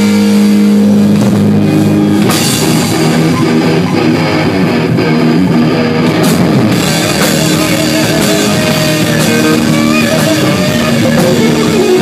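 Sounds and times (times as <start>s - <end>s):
distorted electric guitar note: 0.0s - 12.0s
live rock band: 0.0s - 12.0s.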